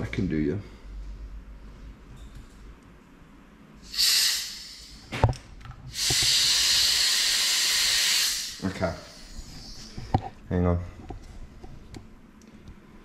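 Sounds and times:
compressed air hissing: 3.8 - 5.1, 5.9 - 10.0.

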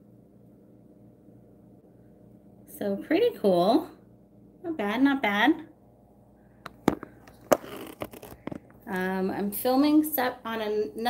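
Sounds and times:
camera handling clicks and knocks: 6.7 - 8.8.

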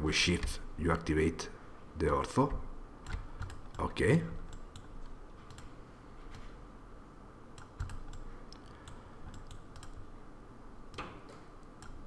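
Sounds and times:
low room noise: 0.0 - 12.0
mouse and keyboard clicks: 3.0 - 3.9, 7.6 - 10.0.

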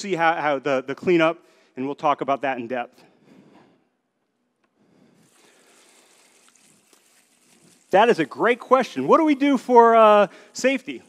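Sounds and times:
liquid trickling into plastic bucket: 5.2 - 8.7.

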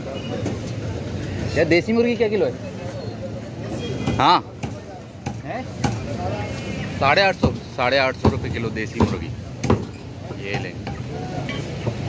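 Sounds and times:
market crowd hubbub: 0.0 - 12.0.

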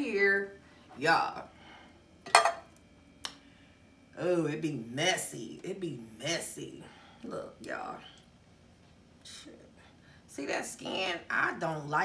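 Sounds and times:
metal pot clinking on hard surface: 2.3 - 2.7.

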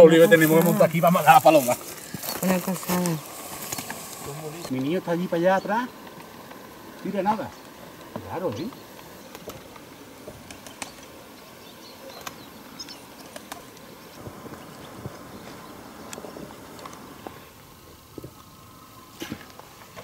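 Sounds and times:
faint clicks and ticks: 6.0 - 11.1.

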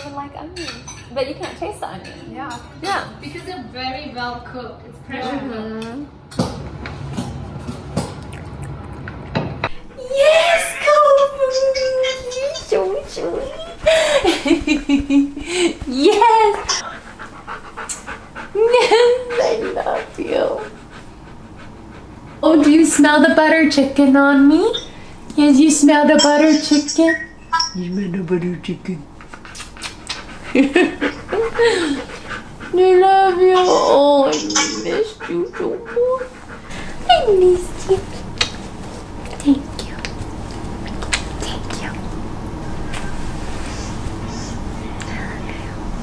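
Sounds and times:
dog squeaking: 10.3 - 13.7, 33.5 - 35.1
dog panting: 15.8 - 24.0, 29.2 - 38.2.

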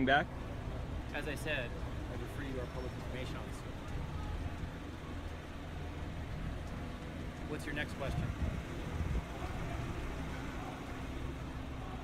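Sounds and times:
car engine idling: 0.0 - 12.0
street background noise: 0.0 - 12.0.

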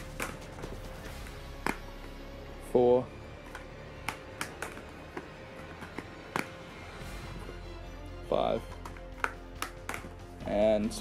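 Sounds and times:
faint background music: 0.0 - 11.0
plastic case clicks: 3.4 - 6.6, 8.7 - 10.1.

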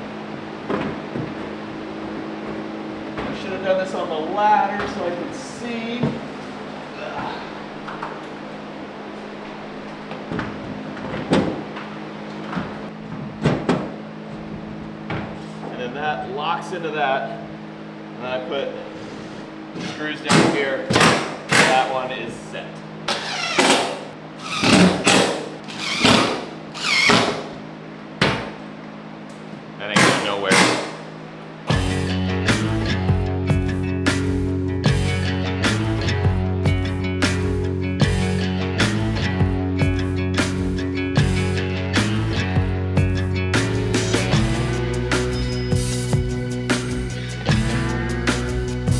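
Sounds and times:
low steady hum: 0.0 - 48.9
background music: 31.7 - 48.9
loud music: 31.7 - 48.9.

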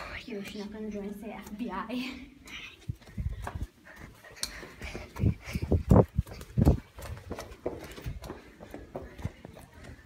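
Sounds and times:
hurried footsteps: 0.0 - 10.0.

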